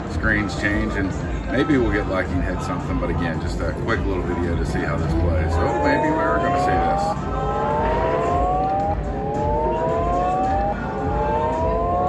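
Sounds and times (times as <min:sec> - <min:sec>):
low casino rumble: 0:01.8 - 0:12.0
rising electronic slot tones: 0:05.0 - 0:12.0.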